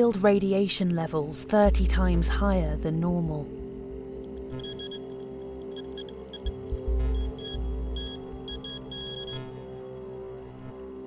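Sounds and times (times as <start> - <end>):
music drone: 1.6 - 11.0
radiation meter beeping: 4.2 - 9.8.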